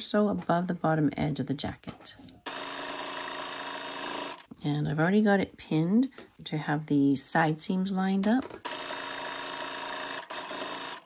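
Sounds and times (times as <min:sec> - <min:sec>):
sewing machine stitching: 0:02.5 - 0:04.5, 0:08.6 - 0:11.0.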